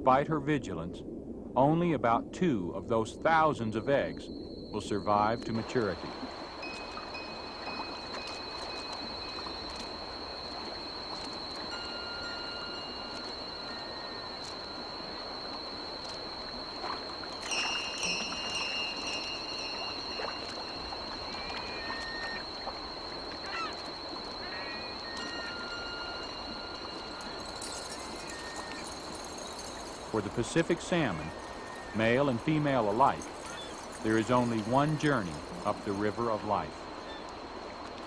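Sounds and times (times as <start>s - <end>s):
light splashes: 4.7s - 38.0s
stream rushing: 4.9s - 38.0s
gull calling: 16.4s - 28.9s, 30.2s - 37.4s.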